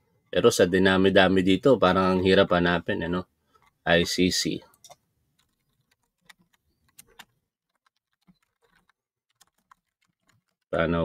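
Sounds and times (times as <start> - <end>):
computer keyboard typing: 4.7 - 10.7.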